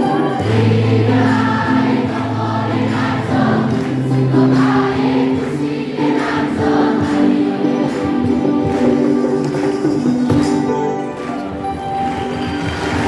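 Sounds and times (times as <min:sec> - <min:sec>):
choir singing: 0:00.0 - 0:08.7
guitars: 0:00.0 - 0:13.0.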